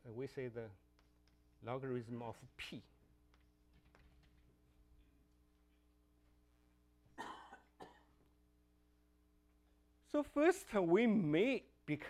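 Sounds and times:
person coughing: 0:07.2 - 0:08.2.

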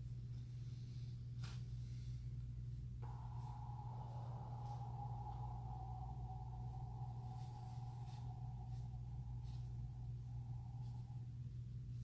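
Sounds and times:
low hum: 0:00.0 - 0:12.0
faint high tone: 0:03.0 - 0:11.6.

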